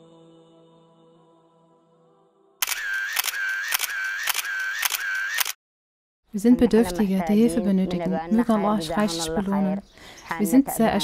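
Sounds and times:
mechanical click-and-whirr: 0:02.6 - 0:05.6.

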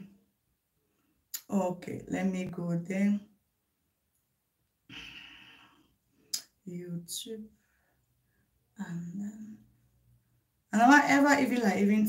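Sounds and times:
woman sighing: 0:04.9 - 0:05.6.

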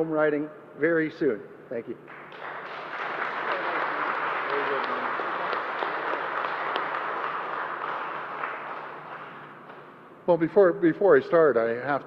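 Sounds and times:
people applauding: 0:02.1 - 0:09.9.

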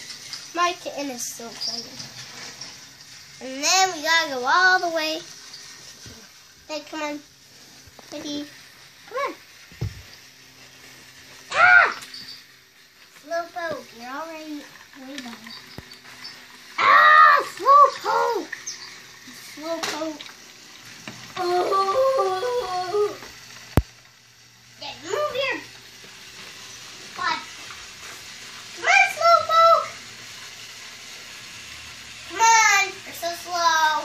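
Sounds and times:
child squealing: 0:11.5 - 0:12.0, 0:21.4 - 0:23.2.

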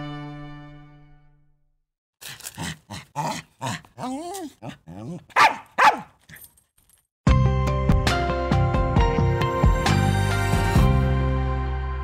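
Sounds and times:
dog whining: 0:03.1 - 0:06.5
small dog barking and yipping: 0:03.2 - 0:06.5.

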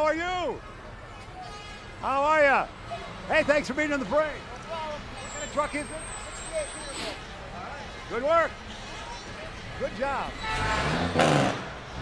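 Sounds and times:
faint voices: 0:00.0 - 0:10.4
street noise: 0:00.0 - 0:12.0.

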